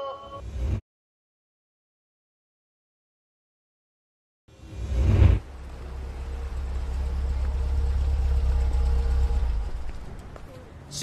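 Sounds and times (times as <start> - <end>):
car engine humming: 4.5 - 11.0.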